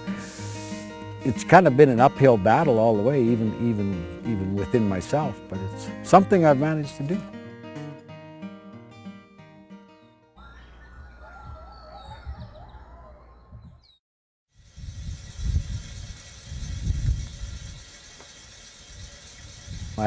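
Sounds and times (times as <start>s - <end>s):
wind gusting on microphone: 14.6s - 18.1s, 18.7s - 20.0s.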